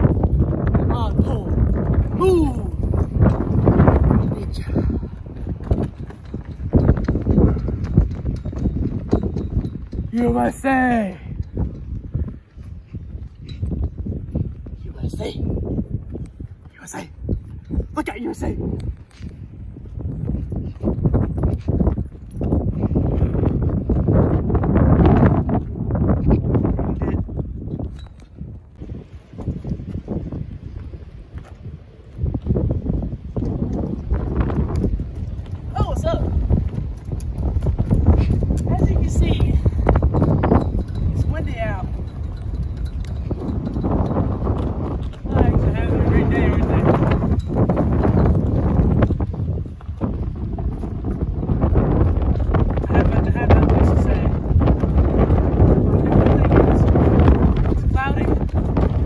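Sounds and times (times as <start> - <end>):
wind rumble on microphone: 0.0 - 59.0.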